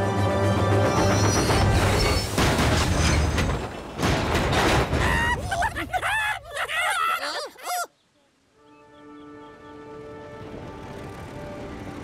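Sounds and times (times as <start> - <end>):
background music: 0.0 - 2.4, 8.6 - 12.0
cartoon crashing clatter: 1.0 - 5.1.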